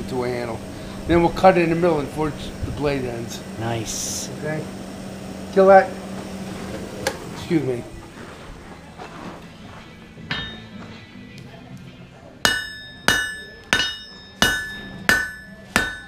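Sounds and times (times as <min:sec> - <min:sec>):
hammer striking steel on anvil: 0:10.3 - 0:10.8, 0:12.4 - 0:16.0.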